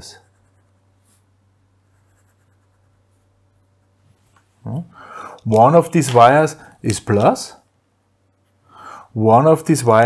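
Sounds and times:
man's voice: 4.7s - 7.6s, 9.2s - 10.0s.

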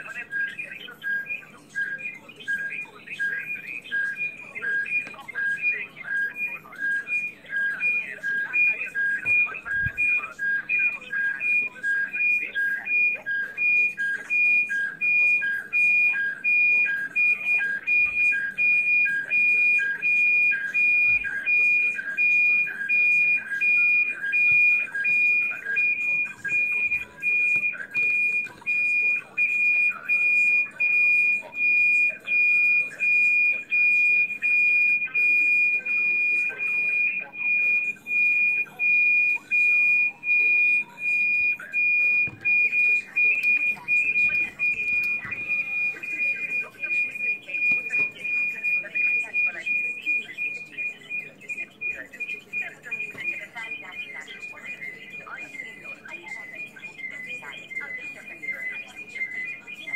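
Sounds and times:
high electronic beeps: 0.0s - 59.9s.

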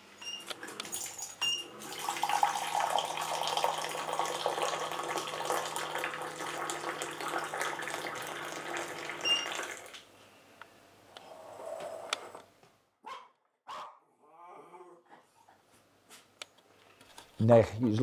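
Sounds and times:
water pouring into mug: 0.6s - 10.0s
dispenser beeping: 9.0s - 9.8s.

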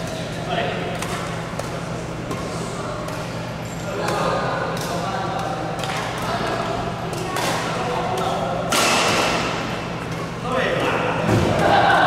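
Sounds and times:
racket hitting shuttlecock: 4.0s - 10.3s.

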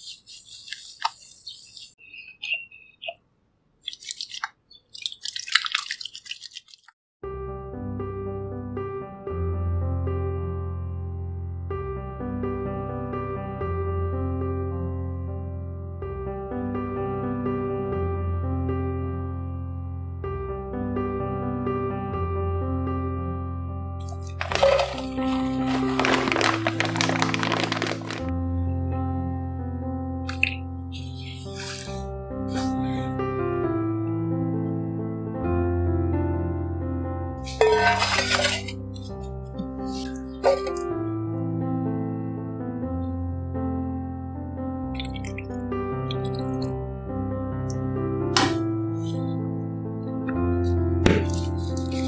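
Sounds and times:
wet hands splashing in water: 3.8s - 7.0s, 24.2s - 28.3s
soft piano music: 7.2s - 52.0s
plastic bag crinkling: 24.2s - 28.3s
flakes pouring into steel bowl: 24.3s - 28.3s, 37.5s - 38.7s.

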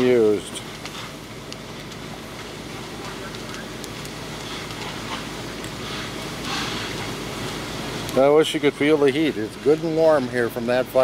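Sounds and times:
burning building roar: 0.0s - 11.0s
faint crackles: 0.0s - 11.0s
fire hose streams spraying: 0.0s - 11.0s.

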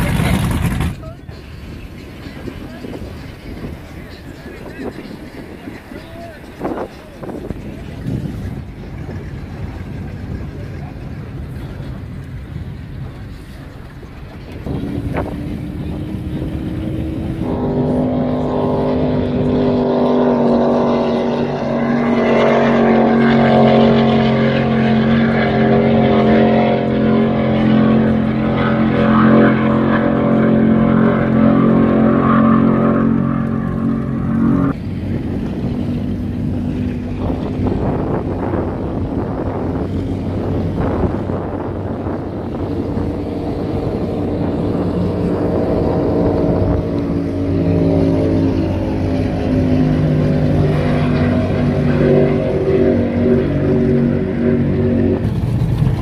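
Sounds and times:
motorboat engines: 0.0s - 56.0s
water rushing: 0.0s - 56.0s.

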